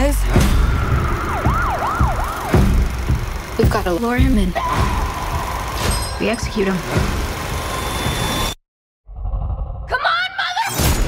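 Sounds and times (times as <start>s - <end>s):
deep bass thumps: 0.0s - 5.0s
siren-like wail: 0.6s - 3.3s, 4.6s - 6.8s.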